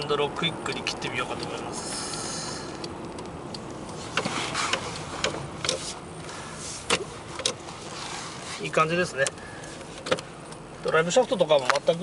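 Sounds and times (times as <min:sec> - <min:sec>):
sharp clicks: 0:00.0 - 0:05.8
car road and engine noise: 0:00.0 - 0:12.0.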